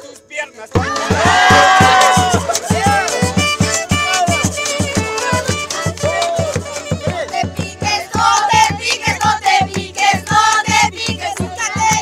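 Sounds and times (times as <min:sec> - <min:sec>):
steady beat: 0:00.7 - 0:12.0
women singing together: 0:00.8 - 0:03.2, 0:06.1 - 0:12.0.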